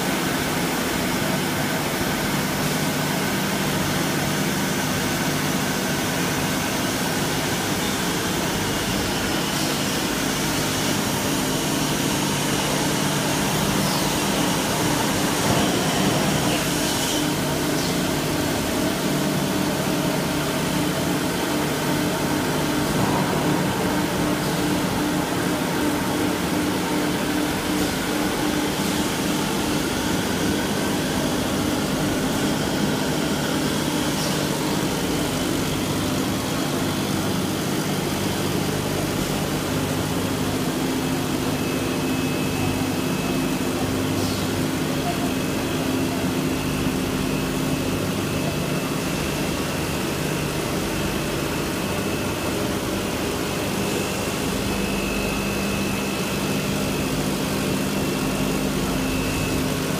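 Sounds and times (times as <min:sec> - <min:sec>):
machine drone: 0:07.6 - 0:59.9.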